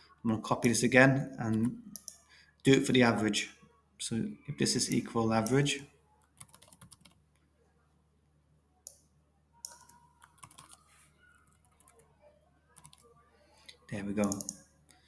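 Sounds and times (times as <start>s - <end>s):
computer keyboard typing: 4.9s - 7.2s, 9.6s - 10.8s, 12.8s - 13.0s, 14.2s - 14.6s.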